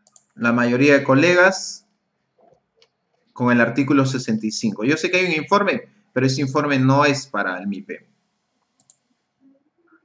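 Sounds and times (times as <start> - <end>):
faint ticks: 8.6 - 9.1.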